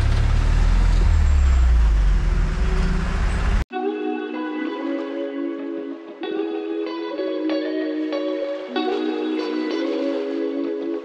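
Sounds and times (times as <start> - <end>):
truck engine drone: 0.0 - 3.7
guitar music: 3.7 - 11.0.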